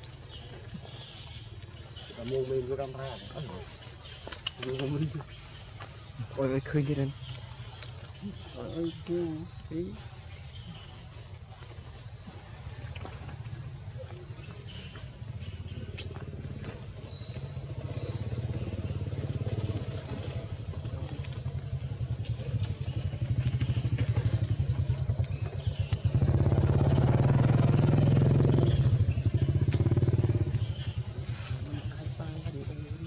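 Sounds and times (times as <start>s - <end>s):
engine running with rapid pulse: 14.9s - 32.5s.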